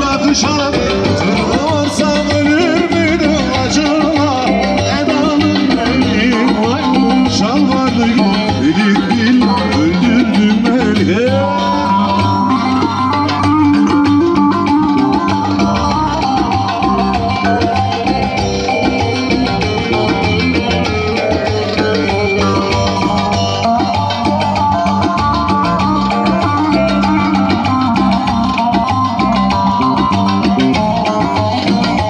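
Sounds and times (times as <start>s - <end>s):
amplified lute melody: 0.0s - 32.0s
keyboard accompaniment: 0.0s - 32.0s.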